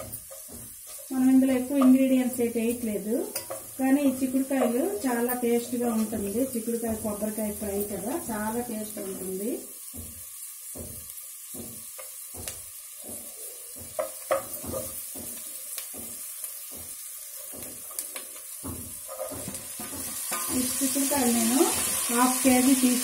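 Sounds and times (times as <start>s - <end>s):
onions sizzling in oil: 0.0s - 23.0s
spatula scraping and knocking pot: 0.0s - 23.0s.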